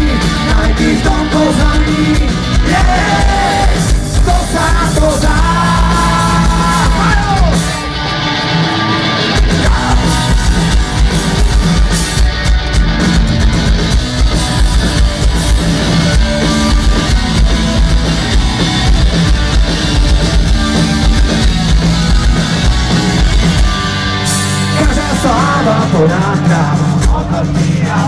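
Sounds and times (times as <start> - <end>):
rock band playing live: 0.0 - 28.0.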